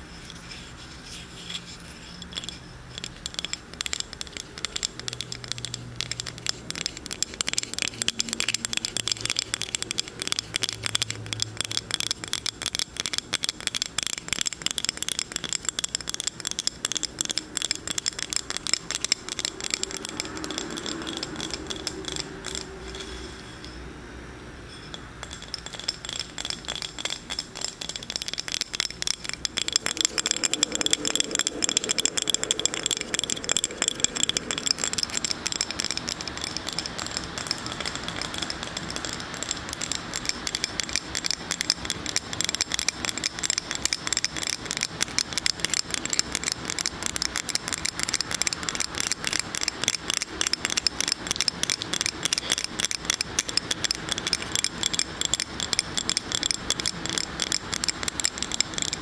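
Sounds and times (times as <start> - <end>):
fingernail tapping on glass: 14.7 - 22.7, 25.3 - 44.8.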